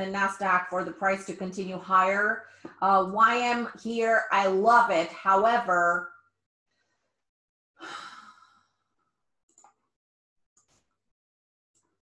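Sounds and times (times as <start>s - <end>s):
woman sighing: 7.8s - 8.6s.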